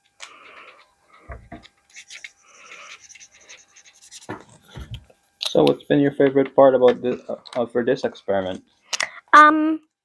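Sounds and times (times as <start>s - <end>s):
marker scratching on paper: 1.9s - 4.5s.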